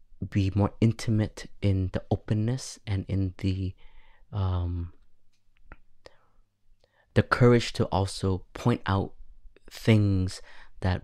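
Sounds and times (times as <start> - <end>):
faint breath: 3.8 - 4.3, 6.0 - 7.1, 10.4 - 10.8.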